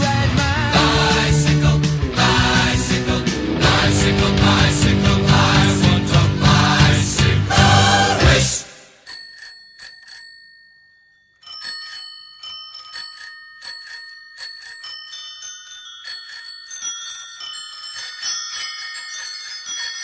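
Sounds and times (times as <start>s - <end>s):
music track: 0.0s - 9.0s
bicycle bells ringing: 8.9s - 20.0s.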